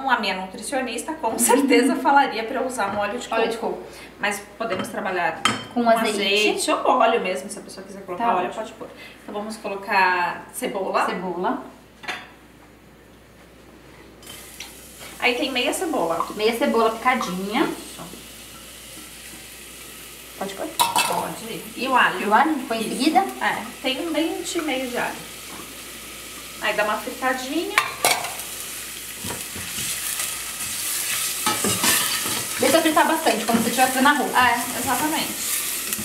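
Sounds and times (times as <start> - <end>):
kitchen background noise: 0.0 - 36.0
onion and garlic sizzling in oil: 14.2 - 36.0.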